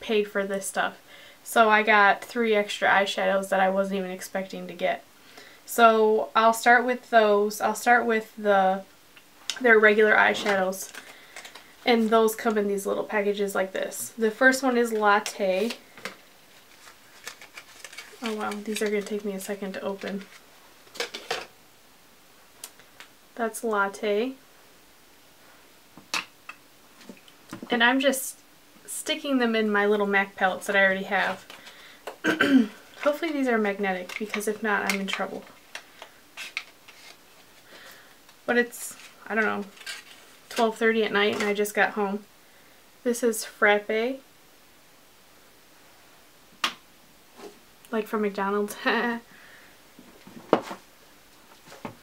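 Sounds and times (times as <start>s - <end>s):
package crinkling and clicking: 10.9s - 11.7s, 16.0s - 19.2s.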